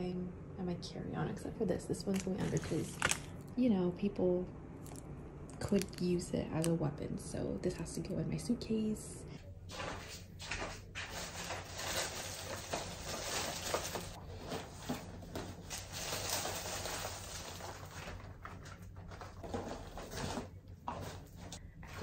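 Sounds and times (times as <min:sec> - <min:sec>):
plastic bag and foil crinkling: 0:02.1 - 0:03.5, 0:05.6 - 0:06.7, 0:09.7 - 0:21.6.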